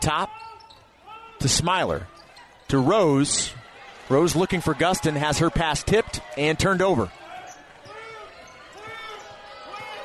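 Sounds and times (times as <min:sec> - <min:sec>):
low crowd murmur: 0:01.0 - 0:10.0.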